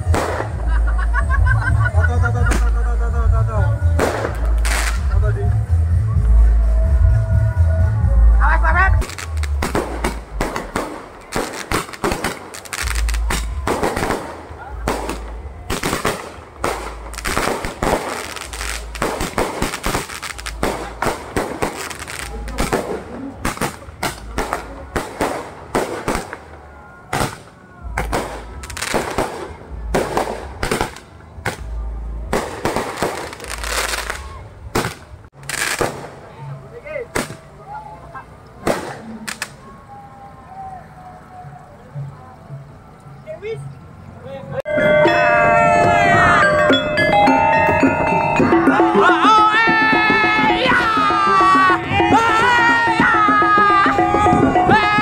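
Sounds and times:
fireworks bangs and pops: 0.0 - 0.7, 2.4 - 2.8, 3.9 - 5.2, 9.0 - 36.4, 37.1 - 37.5, 38.6 - 39.6
roman candle firing shots: 0.0 - 0.7, 4.0 - 5.0, 9.0 - 26.5, 27.1 - 31.7, 32.3 - 36.3, 37.1 - 37.5, 38.6 - 39.6
music with heavy bass beat: 0.0 - 12.2, 12.8 - 25.9, 44.8 - 55.0.

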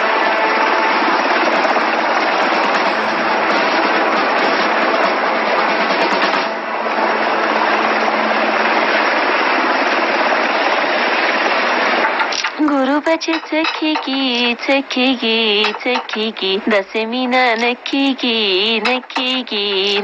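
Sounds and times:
helicopter rotor chopping: 0.0 - 20.0.

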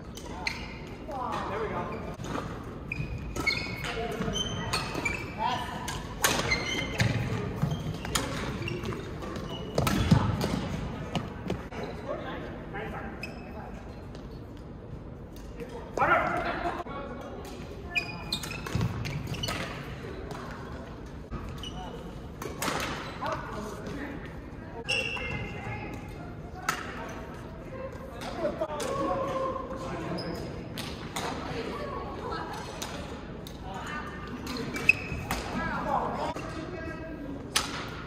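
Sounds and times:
court shoes squeaking: 0.0 - 15.9, 17.2 - 29.1, 29.8 - 38.0
shoe squeaks: 0.1 - 2.2, 2.8 - 5.6, 6.3 - 10.2, 13.0 - 14.6, 17.9 - 20.0, 21.4 - 22.3, 24.8 - 25.8, 30.1 - 30.6, 34.5 - 35.3
rackets hitting shuttlecock: 37.5 - 38.0.

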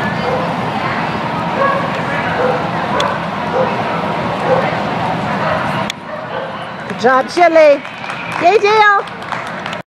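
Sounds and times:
dog barking: 1.6 - 3.8, 4.4 - 4.7, 5.4 - 6.6.

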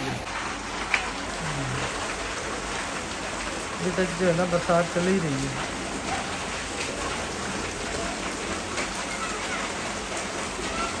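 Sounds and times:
rain splashing into standing water: 0.0 - 11.0.

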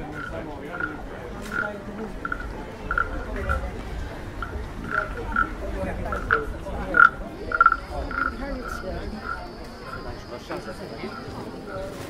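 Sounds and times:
wooden frog rasp croaking: 0.0 - 3.7, 4.3 - 10.2.

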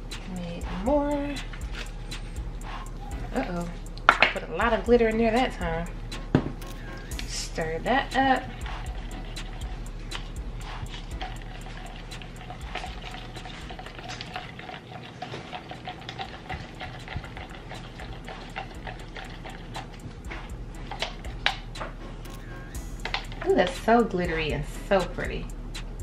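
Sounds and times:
stir stick scraping plastic cup: 7.0 - 21.6.

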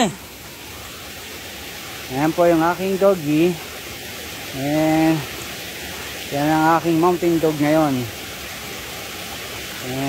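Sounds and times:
stream water running over rocks: 0.0 - 10.0.

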